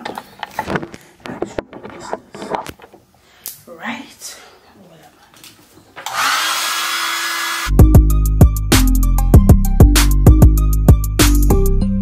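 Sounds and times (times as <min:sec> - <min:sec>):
hair dryer blowing: 0:06.0 - 0:07.7.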